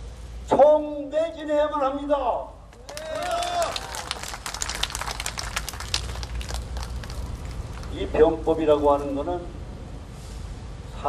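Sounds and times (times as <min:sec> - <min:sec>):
crowd clapping: 0:02.7 - 0:08.2.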